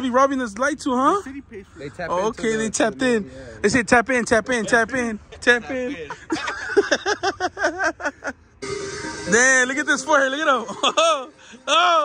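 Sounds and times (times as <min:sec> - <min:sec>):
men laughing: 0:04.5 - 0:08.6, 0:09.8 - 0:12.0
held musical tone: 0:08.6 - 0:12.0.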